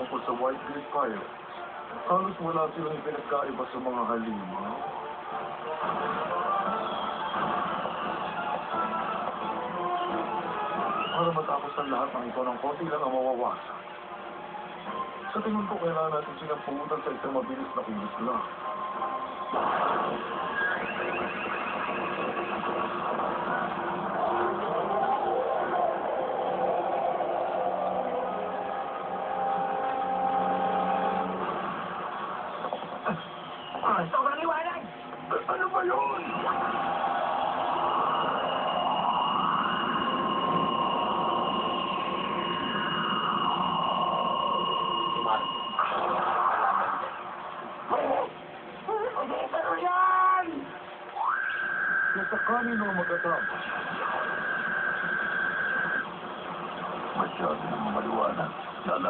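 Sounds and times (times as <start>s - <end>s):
high whine: 0.0s - 48.9s, 50.5s - 59.0s
soundtrack music from television: 0.0s - 59.0s.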